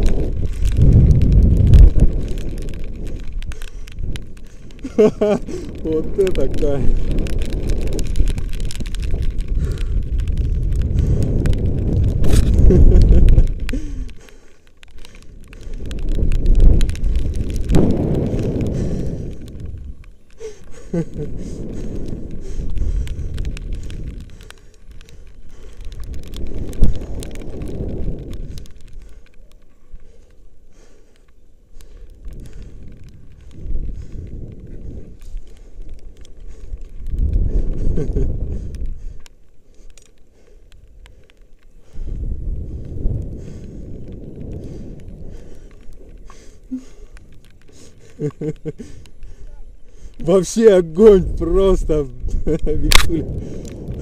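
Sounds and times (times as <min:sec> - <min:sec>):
wind buffeting microphone: 0:00.0 - 0:54.0
person laughing: 0:04.8 - 0:05.8, 0:12.2 - 0:14.1, 0:20.5 - 0:21.6, 0:37.8 - 0:38.7, 0:48.0 - 0:49.0.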